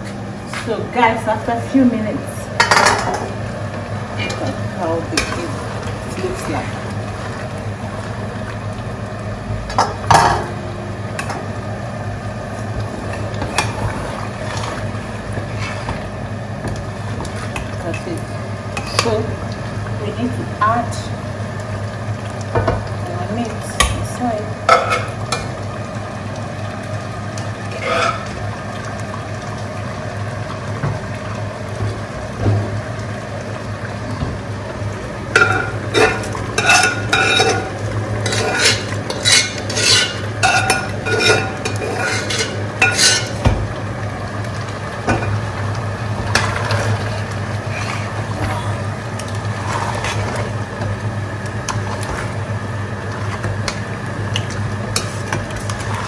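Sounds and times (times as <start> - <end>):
steady low hum: 0.0 - 56.0
metal spoon scraping pots: 27.8 - 28.2, 35.4 - 43.4.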